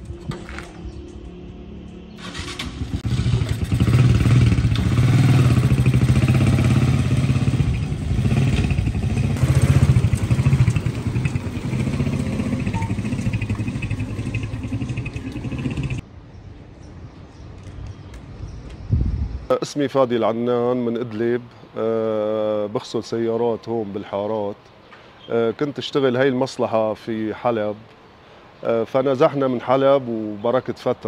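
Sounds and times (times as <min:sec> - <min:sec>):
small motorcycle engine: 0:02.2 - 0:16.0.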